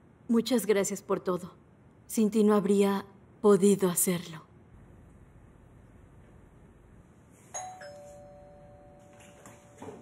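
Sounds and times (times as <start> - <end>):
two-tone doorbell chime: 7.5 - 9.8.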